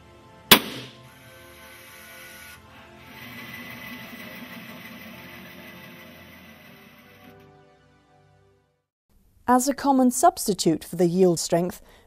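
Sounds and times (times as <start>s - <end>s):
background music: 0.0s - 8.8s
metal test bar snapping bang: 0.5s - 1.0s.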